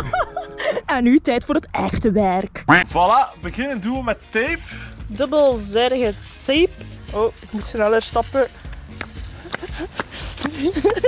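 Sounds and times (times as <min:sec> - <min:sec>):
person speaking: 0:02.9 - 0:08.6
tape crackling off roll: 0:05.1 - 0:11.0.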